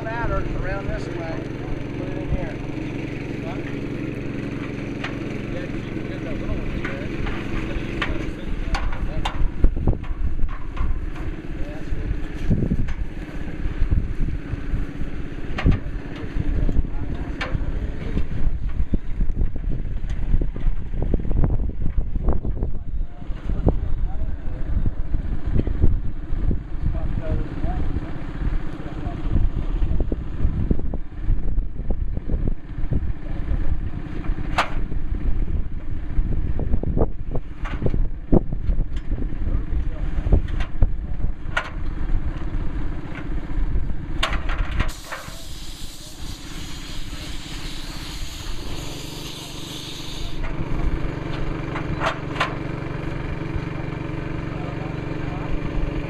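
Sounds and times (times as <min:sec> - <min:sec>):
engine humming steadily: 0:00.0 - 0:56.0
wind buffeting microphone: 0:08.3 - 0:11.4, 0:12.0 - 0:45.0
hiss: 0:44.9 - 0:50.4.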